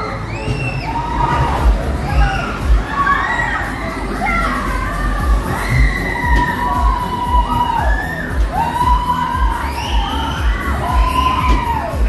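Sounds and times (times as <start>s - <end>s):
riders screaming and shouting: 0.0s - 12.0s.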